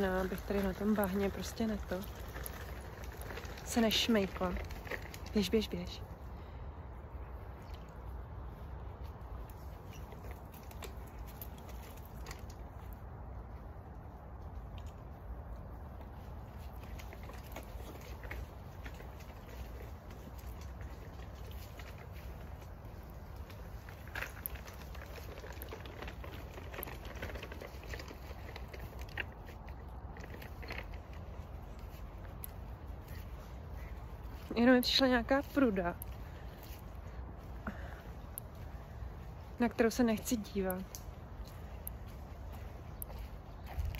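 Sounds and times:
soft footsteps on dirt path: 0:00.0 - 0:43.9.

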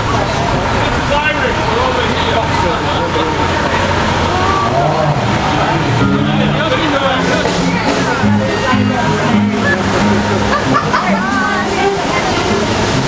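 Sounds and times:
cars passing: 0:00.0 - 0:13.0
people talking indistinctly: 0:00.0 - 0:13.0.

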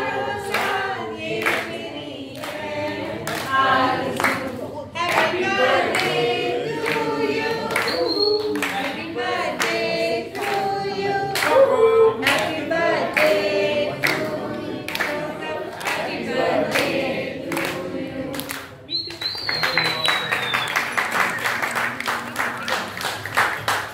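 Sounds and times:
group singing: 0:00.0 - 0:19.0
people clapping: 0:00.0 - 0:23.9
applause: 0:04.2 - 0:06.2, 0:07.7 - 0:09.0, 0:11.3 - 0:12.6, 0:14.9 - 0:16.1, 0:16.7 - 0:23.9.

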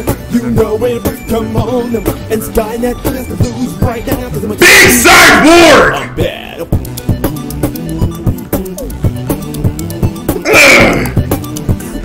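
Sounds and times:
beatbox hi-hat clicks: 0:06.7 - 0:12.0.

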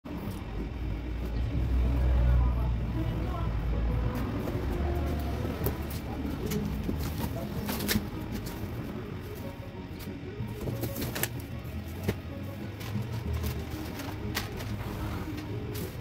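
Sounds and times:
passing traffic rumble: 0:00.1 - 0:16.0.

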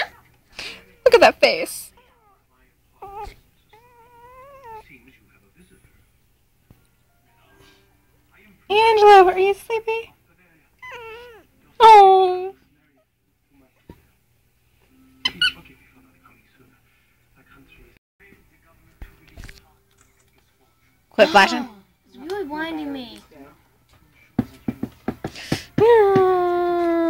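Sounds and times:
young pet crying: 0:03.0 - 0:04.9, 0:10.8 - 0:12.0.

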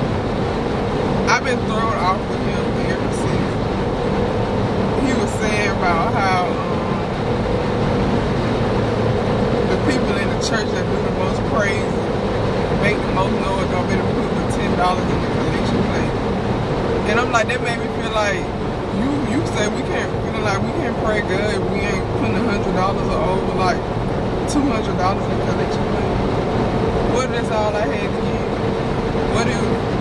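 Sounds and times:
car cabin road and engine noise: 0:00.0 - 0:30.0
person talking: 0:01.3 - 0:03.6, 0:05.0 - 0:06.8, 0:09.7 - 0:12.0, 0:12.7 - 0:16.2, 0:17.0 - 0:23.8, 0:24.5 - 0:26.2, 0:27.1 - 0:28.6, 0:29.3 - 0:30.0.

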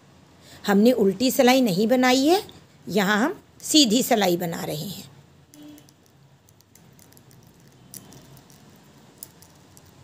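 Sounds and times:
knitting needles clicking: 0:05.5 - 0:10.0.

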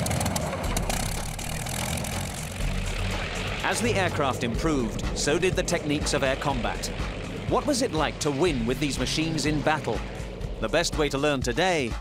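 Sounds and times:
propeller plane engine running: 0:00.0 - 0:12.0.

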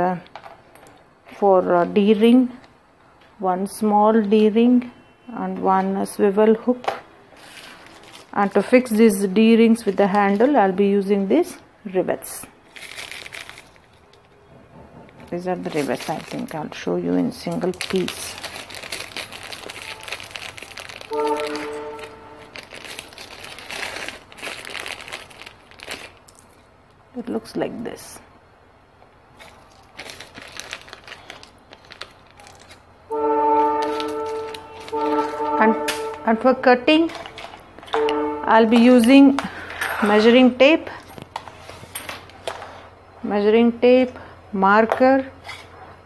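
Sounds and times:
plastic bag crinkling: 0:07.4 - 0:10.7, 0:12.6 - 0:14.4, 0:15.3 - 0:26.8, 0:29.3 - 0:37.9
measuring tapes rustling: 0:29.4 - 0:40.4.

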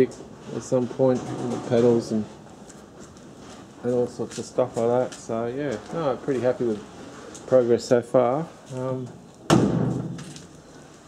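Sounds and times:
sudden thump: 0:09.5 - 0:10.3.

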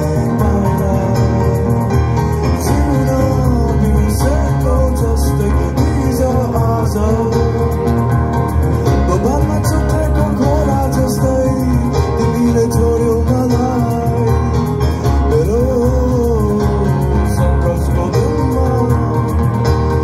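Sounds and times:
person singing: 0:00.0 - 0:08.1, 0:08.8 - 0:20.0
keyboard: 0:00.0 - 0:20.0.

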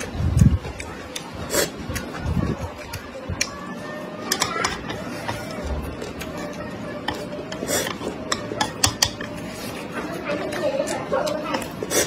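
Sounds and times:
close-up chewing: 0:00.0 - 0:03.6, 0:09.2 - 0:12.0
faint voice-like murmur: 0:00.0 - 0:12.0
chopsticks clicking on metal tray: 0:08.3 - 0:09.4.

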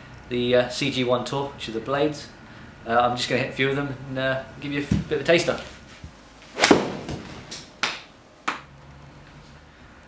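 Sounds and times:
golf club striking ball: 0:06.6 - 0:08.0.

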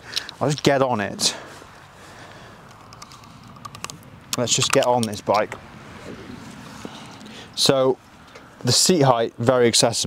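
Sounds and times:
faint small clicks and rustles: 0:02.6 - 0:04.1.

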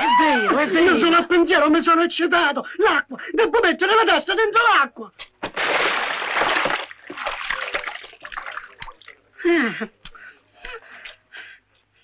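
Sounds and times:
head plunging into water bucket: 0:05.4 - 0:09.2
water splashing and dripping: 0:05.4 - 0:09.2.

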